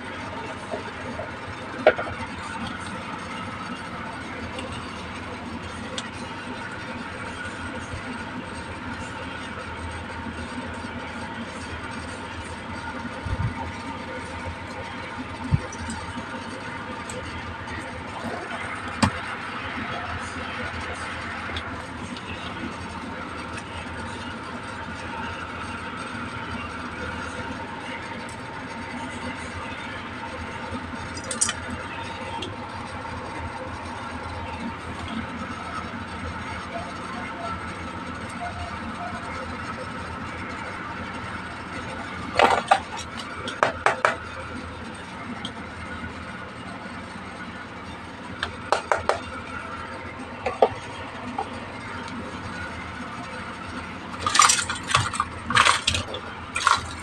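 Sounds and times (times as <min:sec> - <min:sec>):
steady background hum: 0:00.0 - 0:57.0.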